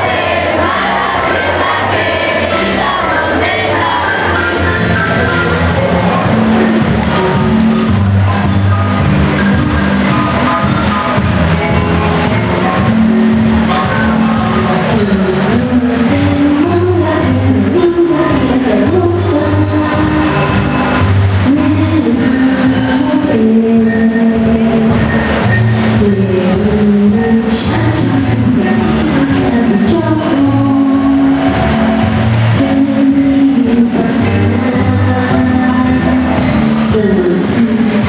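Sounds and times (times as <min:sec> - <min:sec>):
recorded musical accompaniment: 0:00.0 - 0:38.0
girl singing into microphone: 0:13.7 - 0:38.0.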